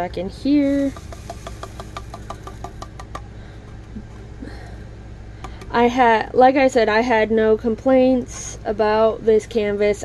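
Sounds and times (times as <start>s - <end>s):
plastic beads clicking in a tray: 0.7s - 3.2s.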